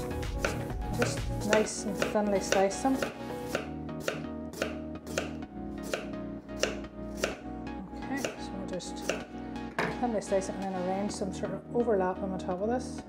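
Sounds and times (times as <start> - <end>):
knife slicing potatoes on wooden board: 0.2 - 7.4, 9.0 - 9.3.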